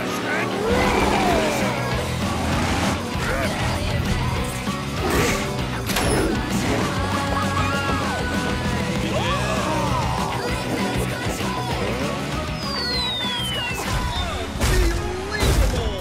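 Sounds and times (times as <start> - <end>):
background music: 0.0 - 16.0
monster truck sound effects: 0.0 - 16.0.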